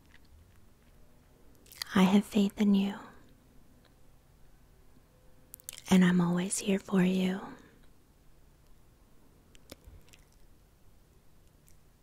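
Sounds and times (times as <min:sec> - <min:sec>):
wet mouth clicks: 0:09.5 - 0:10.5.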